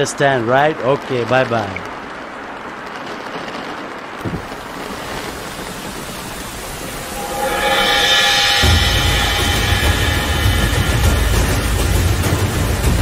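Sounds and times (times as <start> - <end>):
steady rain falling: 0.0 - 13.0
music: 6.9 - 13.0.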